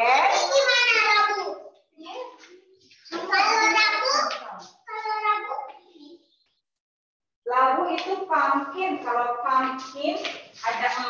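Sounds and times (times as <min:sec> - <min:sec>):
children talking: 0:00.0 - 0:06.5.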